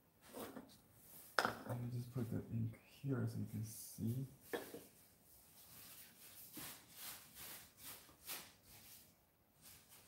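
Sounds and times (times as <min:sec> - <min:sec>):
ink brush swishing on paper: 0:03.4 - 0:10.0.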